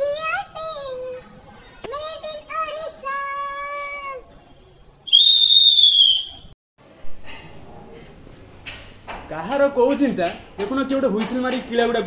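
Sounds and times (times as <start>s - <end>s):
loud shrill whistle: 5.1s - 6.5s.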